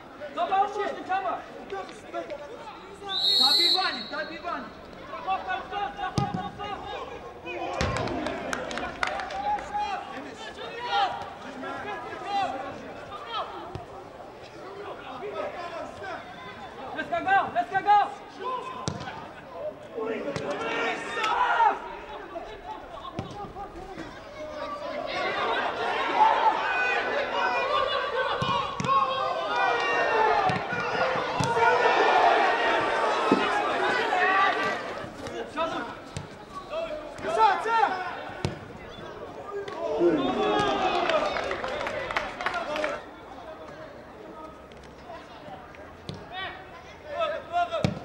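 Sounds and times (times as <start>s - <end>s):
players shouting: 0.2s - 43.2s.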